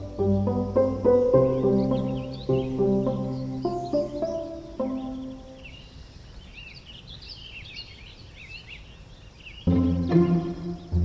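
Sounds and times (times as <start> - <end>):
soft music with sustained tones: 0.0 - 5.9, 9.6 - 11.0
songbirds chirping: 0.0 - 11.0.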